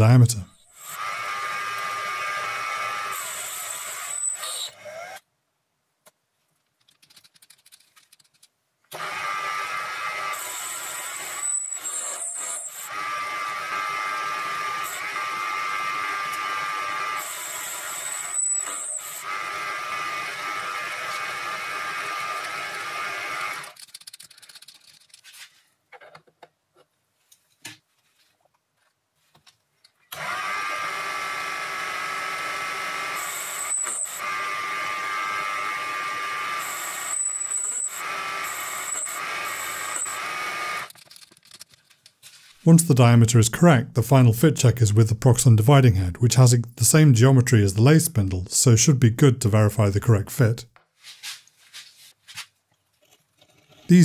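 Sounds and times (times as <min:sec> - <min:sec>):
lathe whining: 0:09.0 - 0:23.8, 0:30.2 - 0:40.9.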